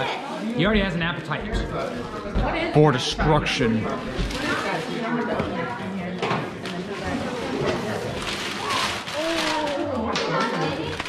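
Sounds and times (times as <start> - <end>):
people talking at once: 0.0 - 11.0
wrapping paper rustling and tearing: 6.7 - 11.0.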